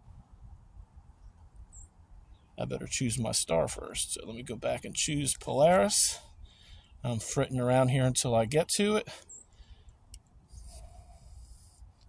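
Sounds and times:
faint hiss: 10.5 - 12.0.

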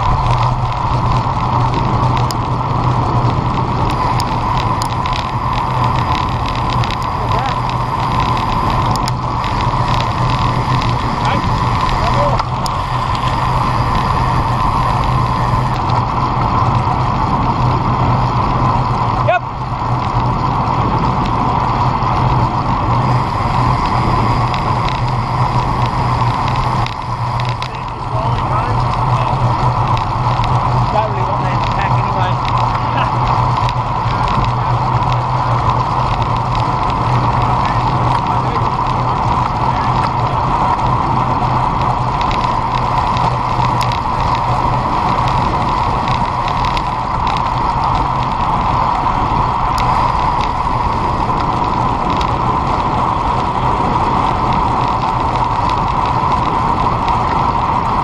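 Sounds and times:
wind rush and road noise: 0.0 - 58.0.

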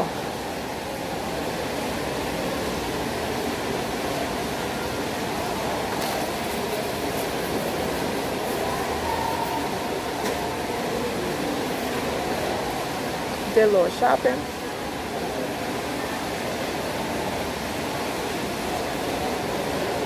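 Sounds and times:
food court crowd roar: 0.0 - 20.0.

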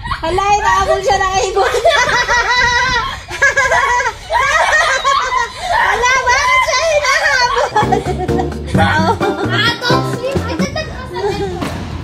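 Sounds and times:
people laughing: 1.6 - 6.0, 6.9 - 11.6.

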